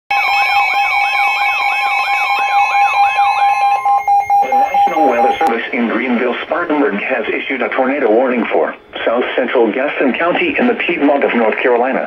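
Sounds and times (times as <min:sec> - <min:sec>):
rising and falling siren sweep: 0:00.1 - 0:05.5
steady alert tones: 0:00.1 - 0:06.5.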